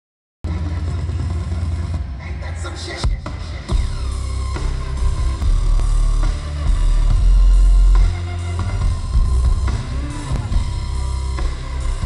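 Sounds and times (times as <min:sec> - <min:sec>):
dubstep sub-bass drone: 0:00.5 - 0:12.0.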